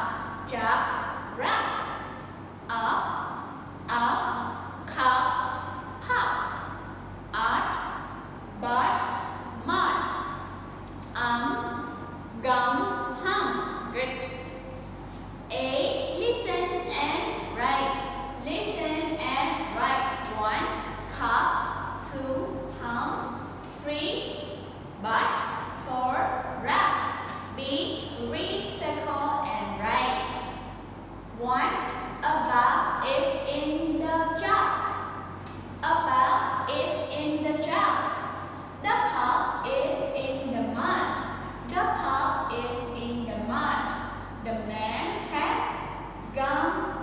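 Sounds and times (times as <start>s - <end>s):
woman speaking words: 0.0s - 6.7s, 7.3s - 10.4s, 11.0s - 14.8s, 15.5s - 24.4s, 25.0s - 30.6s, 31.3s - 35.0s, 35.8s - 47.0s
woman talking: 0.0s - 6.7s, 7.3s - 10.4s, 11.0s - 14.8s, 15.5s - 24.4s, 25.0s - 30.6s, 31.3s - 47.0s.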